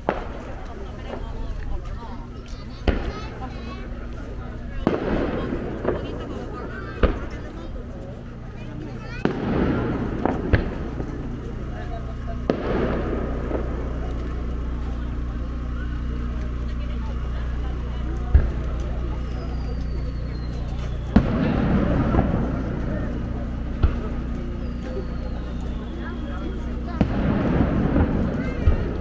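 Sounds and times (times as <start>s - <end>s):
fireworks bangs: 0.0s - 29.0s
steady low background noise: 0.0s - 29.0s.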